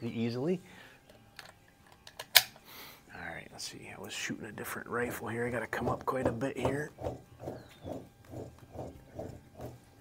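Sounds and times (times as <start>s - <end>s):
rifle bolt click: 1.4s - 2.6s.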